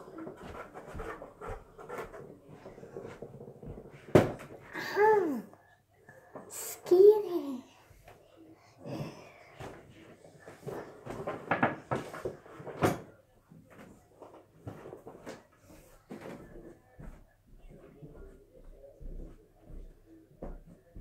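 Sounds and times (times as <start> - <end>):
knocks and thumps: 3.0 - 4.7.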